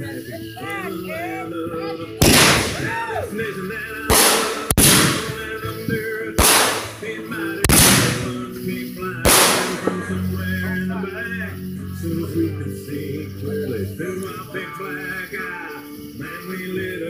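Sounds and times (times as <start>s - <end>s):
song in background: 0.0s - 17.0s
fireworks bangs: 2.2s - 3.2s, 4.1s - 8.6s, 9.2s - 10.3s.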